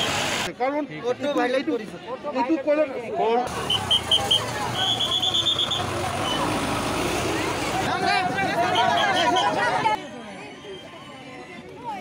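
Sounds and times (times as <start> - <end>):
road noise: 0.0 - 0.6, 3.4 - 12.0
crowd talking: 0.4 - 12.0.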